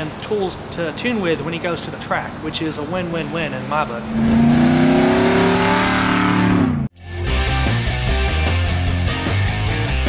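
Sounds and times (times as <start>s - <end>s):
car engine driving by: 1.7s - 6.9s.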